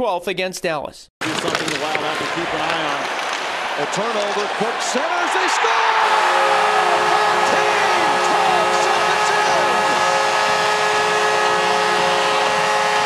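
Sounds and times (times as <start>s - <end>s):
crowd cheering: 1.2s - 13.0s
goal horn blaring: 4.6s - 13.0s.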